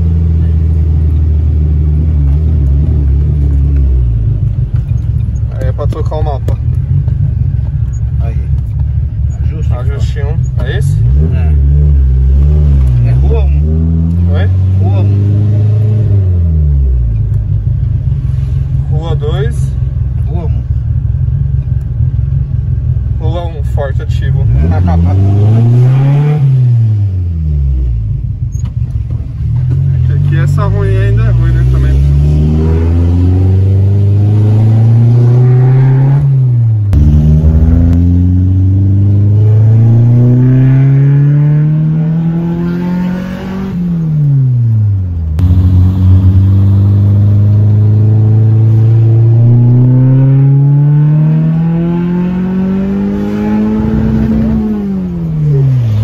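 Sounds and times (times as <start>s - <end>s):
car engine accelerating hard: 0.0s - 56.0s.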